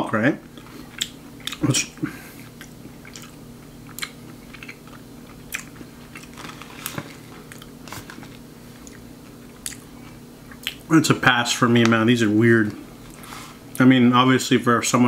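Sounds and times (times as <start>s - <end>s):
low steady hum: 0.0s - 15.0s
person chewing crunchy food: 0.5s - 10.9s.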